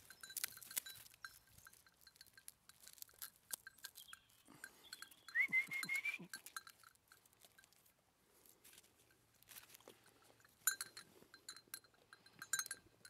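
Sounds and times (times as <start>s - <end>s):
goats chewing and crunching: 0.0s - 13.0s
goat high thin call: 5.3s - 6.4s.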